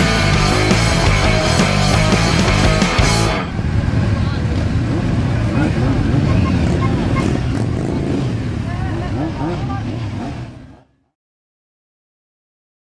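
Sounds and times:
motorcycle engines running: 0:00.0 - 0:11.1
people's voices: 0:00.0 - 0:11.1.

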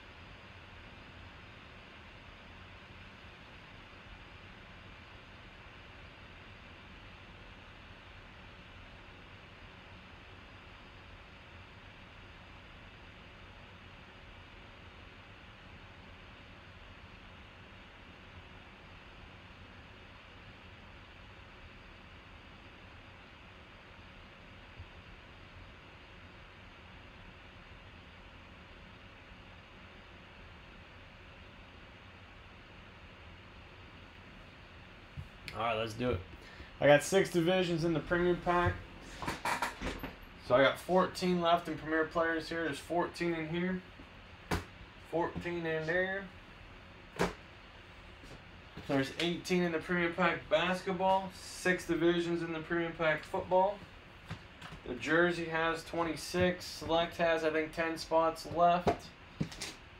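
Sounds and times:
microphone hiss: 0:00.0 - 0:59.9.

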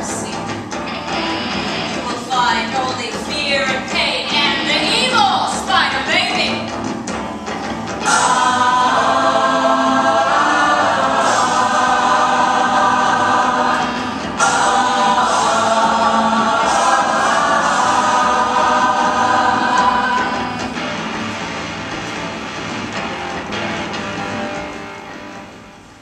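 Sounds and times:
women singing in harmony: 0:08.0 - 0:20.7.

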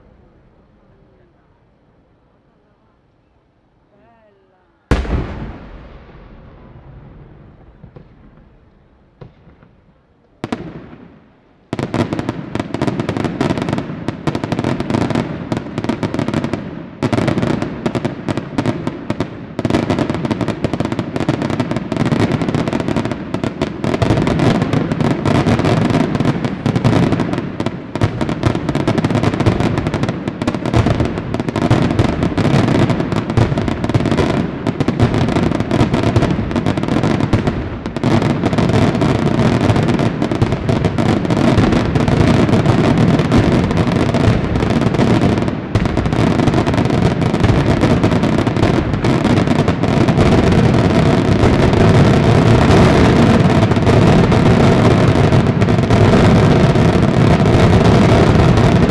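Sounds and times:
firework bang: 0:04.9 - 0:11.1.

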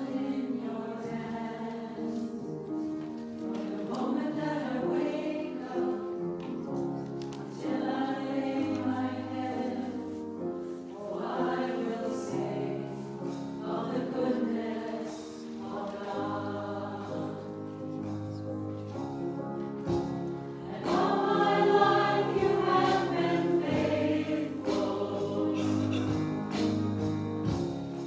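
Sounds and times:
church choir singing: 0:00.0 - 0:19.0, 0:19.8 - 0:26.7.

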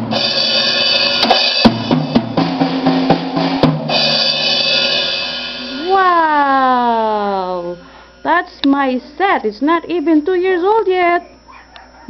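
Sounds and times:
cymbals ringing: 0:00.0 - 0:02.0, 0:03.8 - 0:09.1
drum hits: 0:00.0 - 0:06.6.

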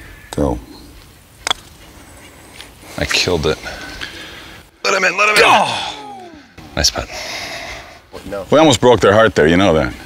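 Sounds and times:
putters striking golf balls: 0:01.4 - 0:01.8.

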